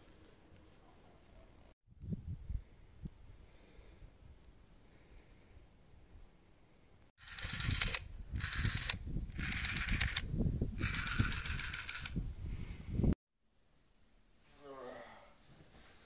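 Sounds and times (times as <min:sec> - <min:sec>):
toy gun rattling shots: 0:07.2 - 0:10.2, 0:10.8 - 0:12.2.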